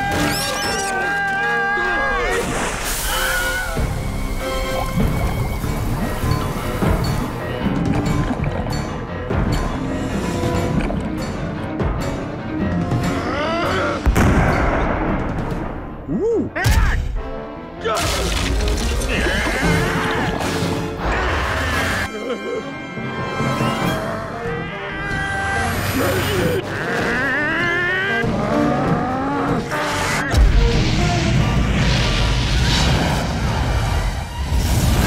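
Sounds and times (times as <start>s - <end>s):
background music: 0.0s - 35.0s.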